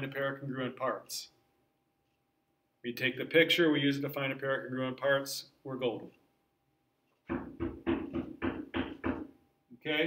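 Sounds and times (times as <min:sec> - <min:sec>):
knocks on hard surface: 0:07.3 - 0:09.3.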